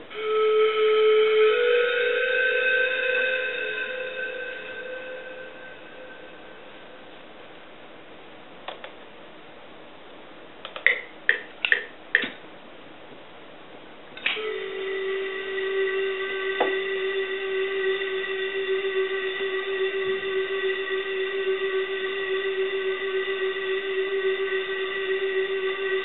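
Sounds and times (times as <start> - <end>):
synthesizer chord: 0.1 - 7.0, 14.4 - 26.0
short synthesizer notes: 14.4 - 26.0.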